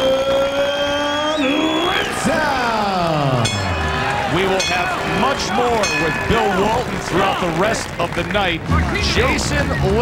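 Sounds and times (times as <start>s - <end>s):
announcer calling out a name: 0.0s - 7.7s.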